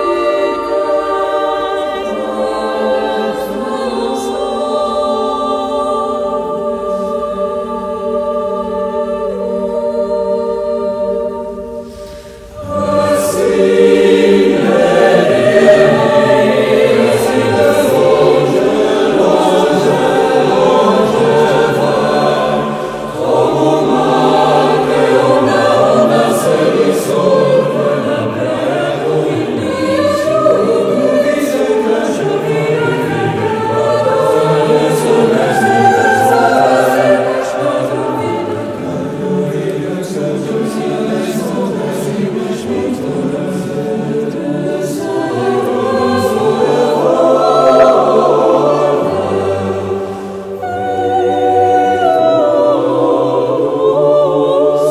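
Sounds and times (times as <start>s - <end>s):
mixed choir singing: 0.0s - 54.9s.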